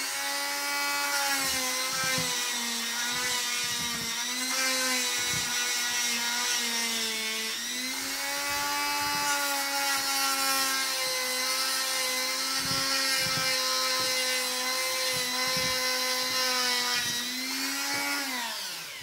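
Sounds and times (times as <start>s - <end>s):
rotary tool grinding nails: 0.0s - 19.0s.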